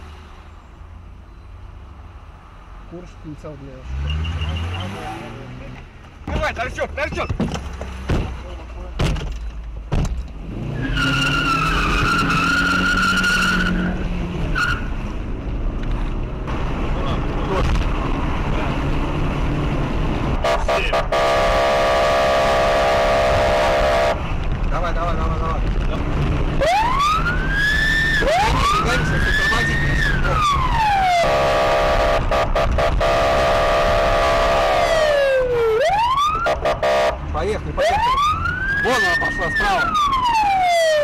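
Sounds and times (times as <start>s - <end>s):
car engine and road noise: 0.0s - 41.0s
buzzy horn-like tone: 20.4s - 24.2s, 31.2s - 35.2s, 36.6s - 37.2s
police siren wailing: 26.6s - 37.1s, 37.8s - 41.0s.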